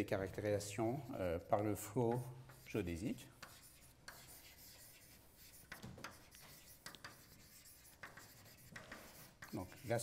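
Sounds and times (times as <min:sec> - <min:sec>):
chalk tapping and scraping on blackboard: 0:00.9 - 0:10.0.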